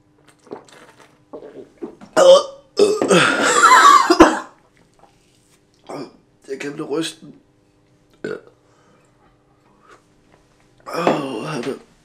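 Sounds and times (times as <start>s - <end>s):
man belching: 2.2s - 4.4s, 5.9s - 6.2s, 8.2s - 8.6s.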